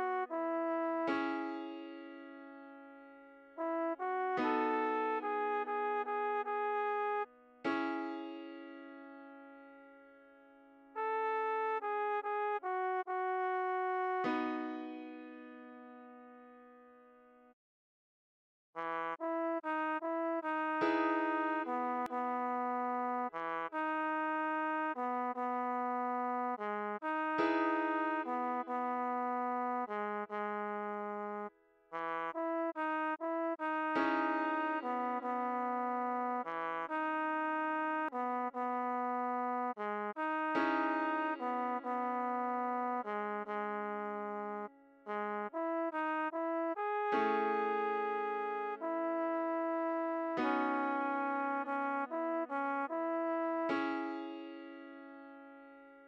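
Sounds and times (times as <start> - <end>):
trombone melody: 0.0 - 2.0, 3.6 - 8.6, 11.0 - 15.9, 18.8 - 54.9
piano chords: 53.8 - 55.2.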